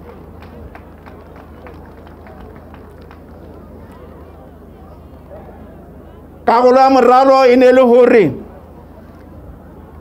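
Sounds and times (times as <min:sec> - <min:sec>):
faint distant voices: 0:00.0 - 0:10.0.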